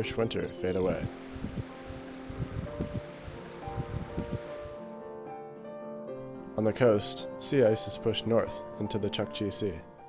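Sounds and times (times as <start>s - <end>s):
soft background music: 0.0s - 10.0s
meltwater running and dripping: 1.2s - 4.8s.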